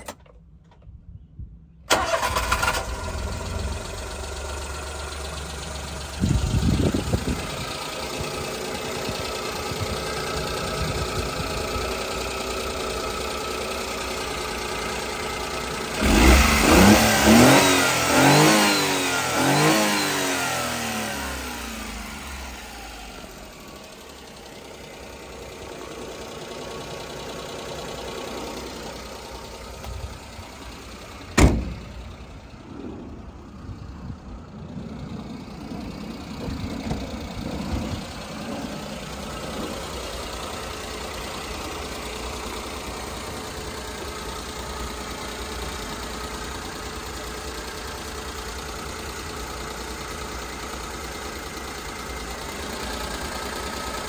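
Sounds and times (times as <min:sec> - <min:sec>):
car engine revving and idling: 0:01.9 - 0:54.0.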